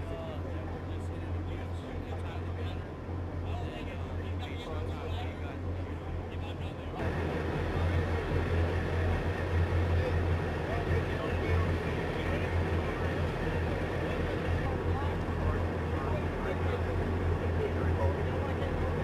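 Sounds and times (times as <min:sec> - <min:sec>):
diesel engines droning: 0:00.0 - 0:19.0.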